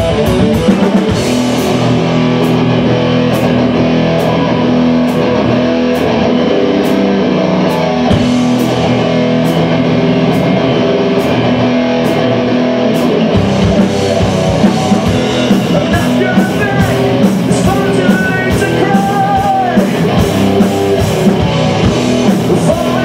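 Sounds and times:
heavy metal band playing: 0.0s - 23.0s
heavy drum hits: 13.4s - 23.0s.

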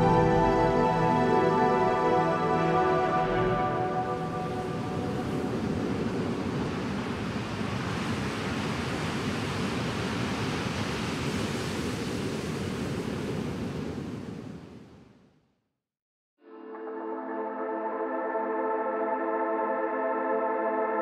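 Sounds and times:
ambient electronic chords: 0.0s - 5.0s.

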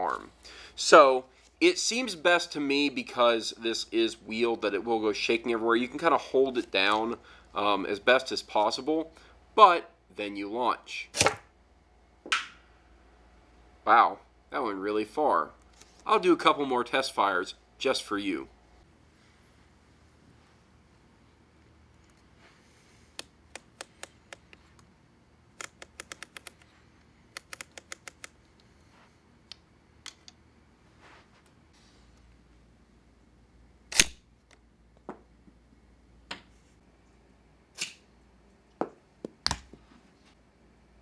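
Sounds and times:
catapult arm snapping: 11.1s - 11.5s.

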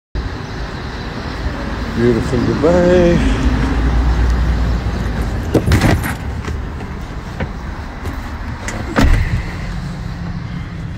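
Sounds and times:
van door shutting thump: 7.4s - 9.5s.

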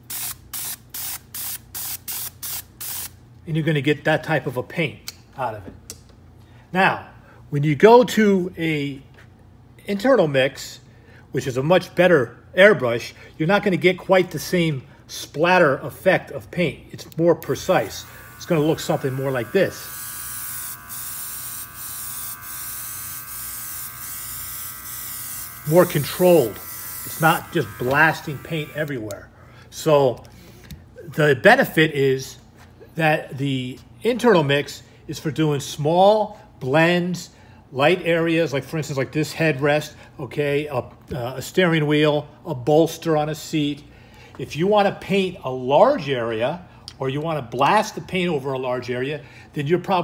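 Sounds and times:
airbrush hissing bursts: 0.0s - 3.2s, 17.9s - 28.9s.

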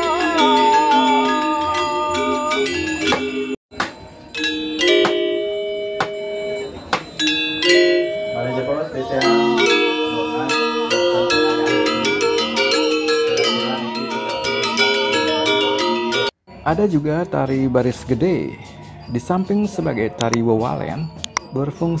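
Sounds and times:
metallophone ensemble playing: 0.0s - 16.4s.

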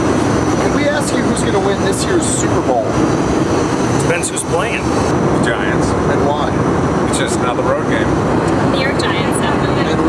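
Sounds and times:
airliner cabin drone: 0.0s - 10.0s.

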